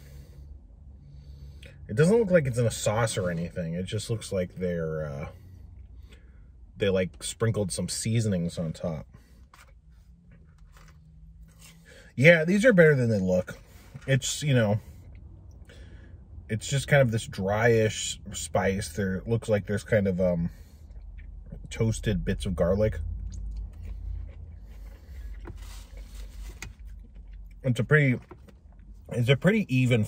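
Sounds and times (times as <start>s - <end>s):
faint low car hum: 0.0s - 30.0s
soft chewing ticks: 23.1s - 27.6s.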